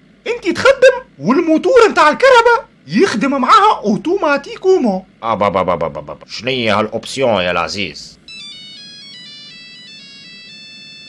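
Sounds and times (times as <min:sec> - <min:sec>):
phone ringtone melody: 0:08.2 - 0:11.0.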